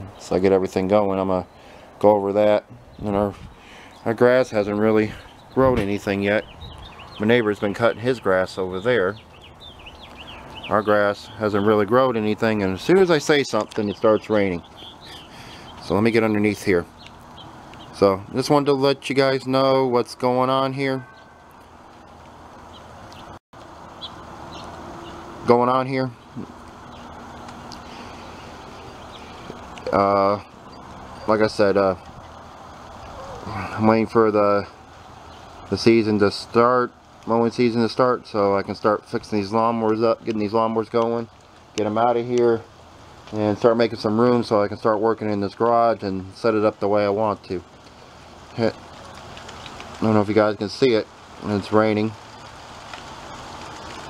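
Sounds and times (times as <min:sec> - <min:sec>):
light rain hissing: 0:00.0 - 0:54.0.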